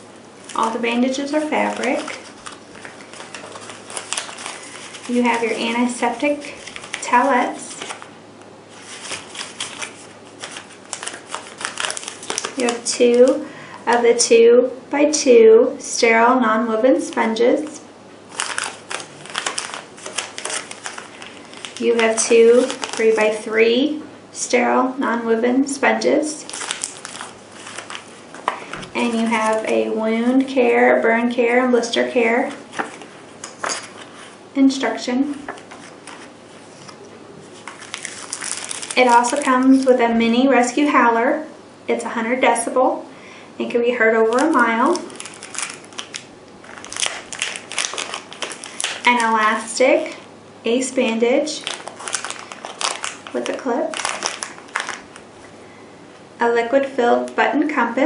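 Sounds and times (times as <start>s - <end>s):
paper packets crinkling: 0.4s - 8.1s, 8.7s - 13.5s, 18.3s - 23.5s, 26.3s - 30.5s, 32.5s - 34.4s, 35.3s - 40.0s, 44.2s - 50.2s, 51.5s - 55.4s.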